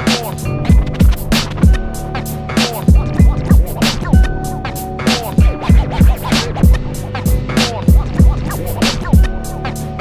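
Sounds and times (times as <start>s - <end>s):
looped sampled melody: 0.0s - 10.0s.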